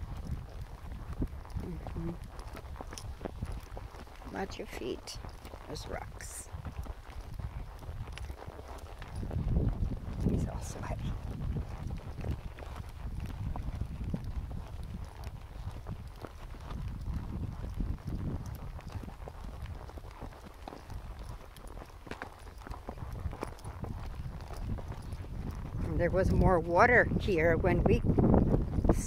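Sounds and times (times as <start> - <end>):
horse hooves clopping on dirt: 0.0 - 29.0
wind rumbling on microphone: 0.0 - 29.0.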